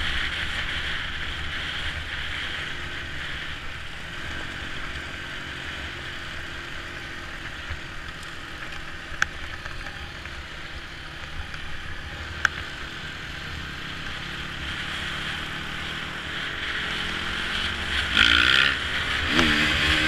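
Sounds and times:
dirt bike engine revving: 0.0s - 20.0s
wind noise: 0.0s - 20.0s.

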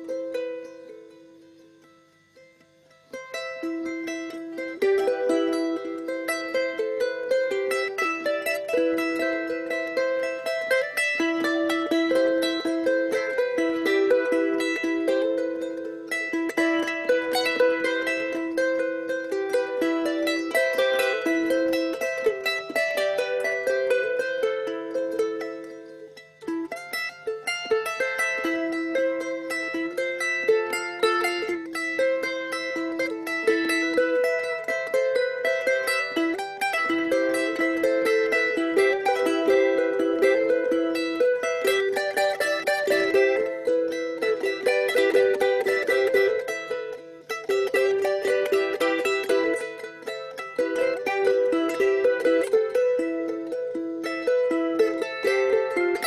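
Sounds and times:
plucked string instrument melody: 0.0s - 56.0s.

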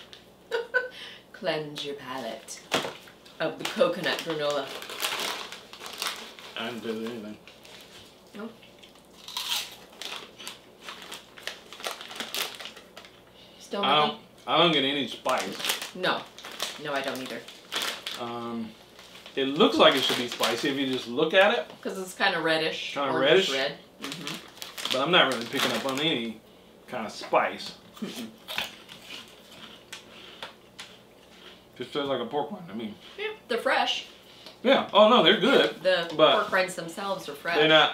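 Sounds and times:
snack bag crinkling: 2.6s - 13.3s, 14.8s - 21.5s, 23.4s - 26.3s, 28.0s - 31.6s
pork rinds crunching: 8.7s - 13.1s, 15.2s - 18.4s, 24.0s - 26.1s, 28.0s - 31.0s.

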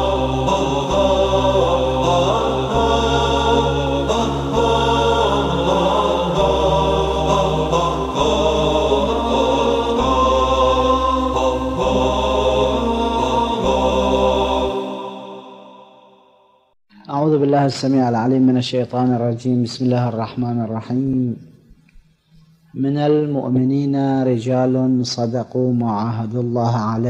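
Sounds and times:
low drone: 0.0s - 15.8s
chanting voices: 0.0s - 16.1s.

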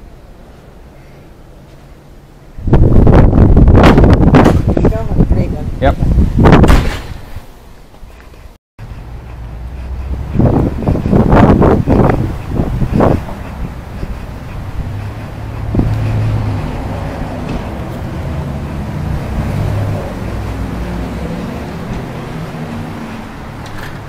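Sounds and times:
wind buffeting microphone: 2.5s - 7.5s, 8.4s - 24.0s.

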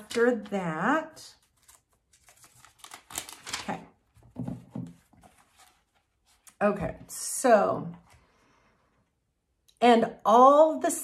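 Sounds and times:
thin pages turning: 0.0s - 0.6s, 1.3s - 6.6s.

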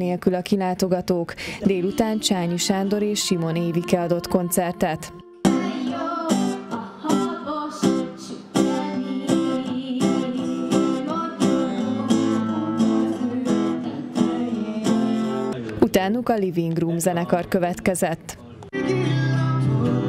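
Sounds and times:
woman singing: 1.5s - 15.6s, 18.8s - 20.0s
acoustic guitar strumming: 1.7s - 15.6s.

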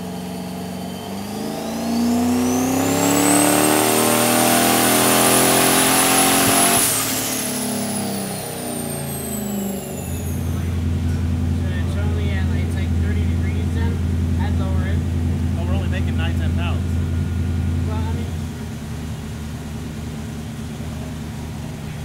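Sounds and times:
engine revving on dyno: 0.0s - 22.0s
high turbo whine: 0.0s - 22.0s.

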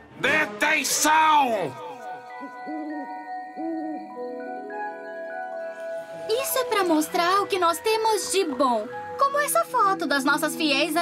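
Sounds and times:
chiming mallet music: 1.8s - 11.0s
cartoon owl hoot: 2.3s - 4.2s.

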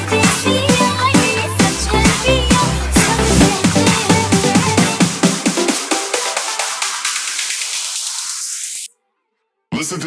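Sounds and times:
hissing noise riser: 3.0s - 3.8s.

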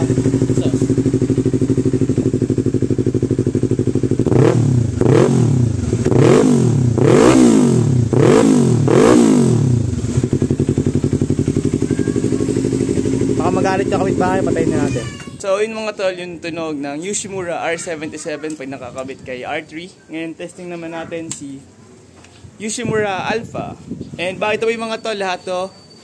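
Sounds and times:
motorcycle engine revving: 0.0s - 14.9s.

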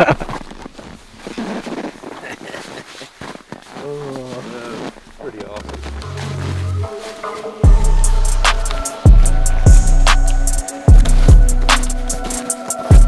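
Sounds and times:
low bass music: 5.6s - 7.0s, 7.6s - 13.0s.

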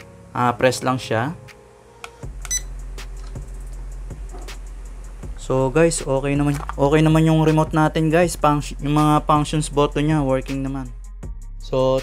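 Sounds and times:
low steady hum: 2.2s - 7.4s
high electronic beep: 2.5s - 2.7s.

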